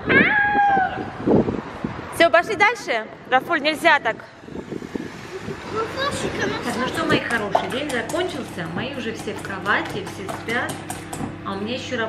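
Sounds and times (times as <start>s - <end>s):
girl imitating cat meow: 0.0s - 1.0s.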